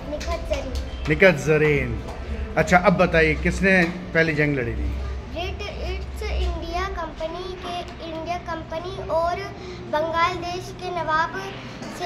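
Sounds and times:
girl speaking sing-song: 5.2s - 12.0s.

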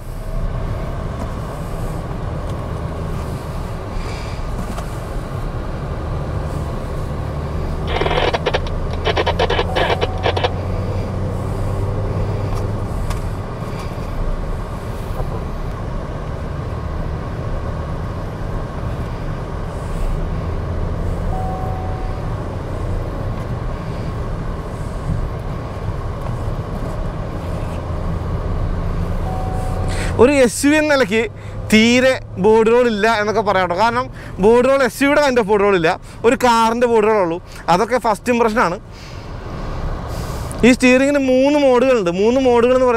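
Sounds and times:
car engine and road noise: 0.0s - 42.9s.

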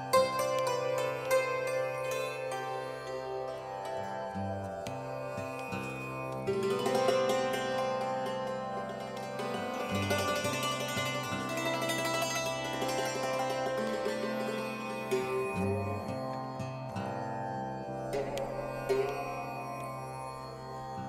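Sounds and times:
hammered dulcimer playing: 0.0s - 21.0s.

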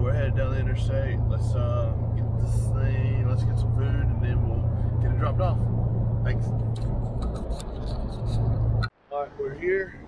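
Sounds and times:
diesel engine droning: 0.0s - 8.9s
road noise: 0.0s - 10.0s.

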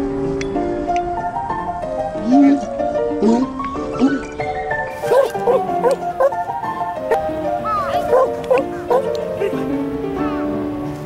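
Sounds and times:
background music: 0.0s - 11.0s
dog barking and yipping: 5.0s - 6.4s, 7.1s - 7.3s, 7.9s - 9.7s.

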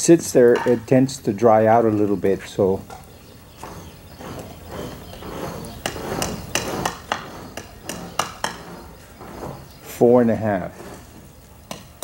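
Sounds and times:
tools knocking on buckets: 0.4s - 1.0s, 2.8s - 10.0s
scraping rustling noise: 3.4s - 11.6s.

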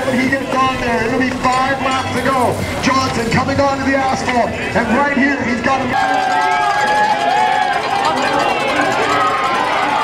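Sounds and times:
man commentating a race: 0.0s - 6.1s
background music: 0.0s - 10.0s.

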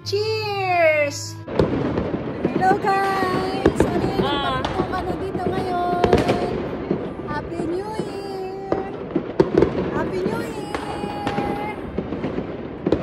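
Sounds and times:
fireworks and firecrackers banging: 0.0s - 13.0s.

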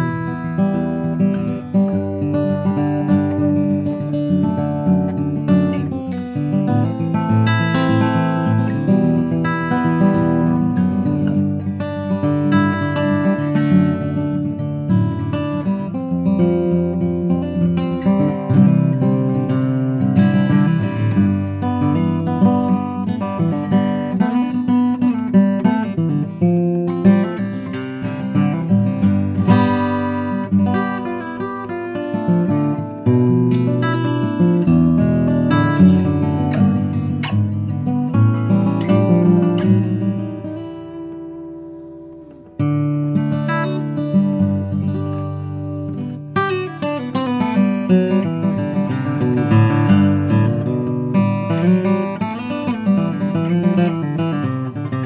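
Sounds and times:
fingerstyle acoustic guitar: 0.0s - 55.0s.

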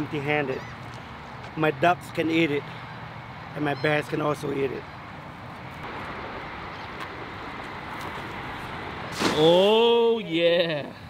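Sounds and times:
distant road traffic: 0.0s - 11.0s
wind: 0.0s - 11.0s.

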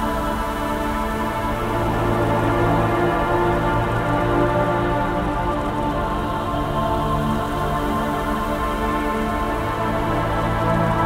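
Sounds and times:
synthesizer drones: 0.0s - 11.0s.

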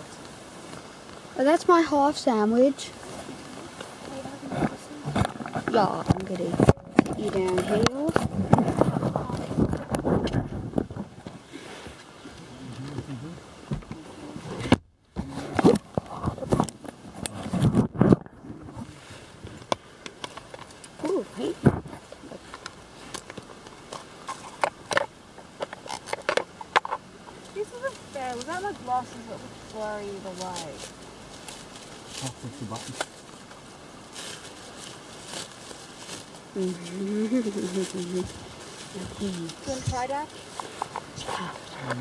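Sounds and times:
low talk: 1.4s - 10.8s, 12.2s - 16.7s, 32.1s - 33.0s.

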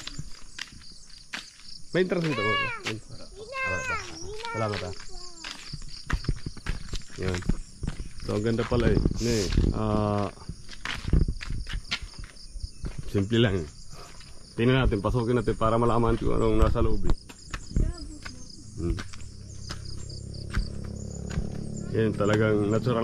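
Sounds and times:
footsteps on gravel and timber steps: 0.0s - 14.9s, 15.9s - 23.0s
insects chirring: 0.0s - 23.0s
person speaking: 2.1s - 5.6s.

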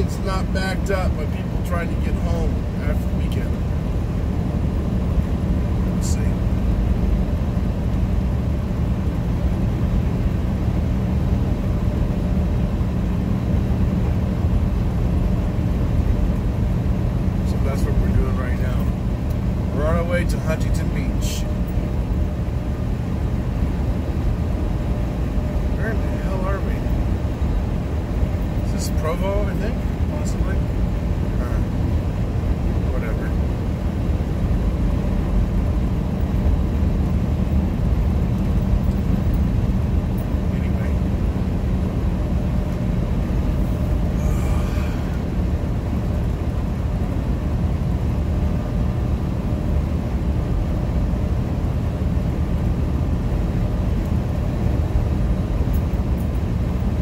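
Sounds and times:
road noise: 0.0s - 57.0s
truck engine drone: 0.0s - 57.0s.

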